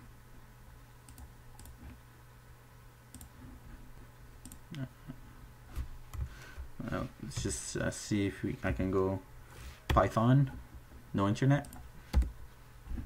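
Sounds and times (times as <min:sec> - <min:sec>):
steady low hum: 0:00.0 - 0:13.0
computer mouse clicks: 0:01.1 - 0:02.0, 0:03.1 - 0:03.4, 0:04.4 - 0:04.8, 0:11.6 - 0:12.4.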